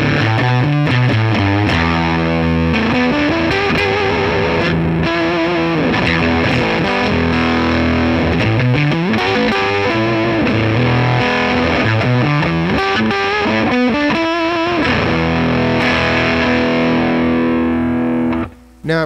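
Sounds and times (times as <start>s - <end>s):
fuzzed electric guitar lead: 0.0s - 19.0s.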